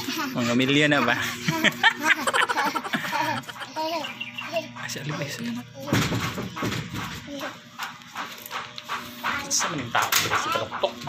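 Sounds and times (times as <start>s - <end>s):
soft voices talking: 3.0s - 6.2s.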